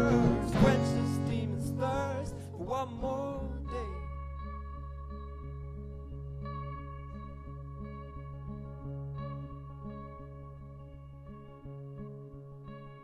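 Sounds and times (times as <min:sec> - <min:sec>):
electric guitar picking: 0:00.0 - 0:13.0.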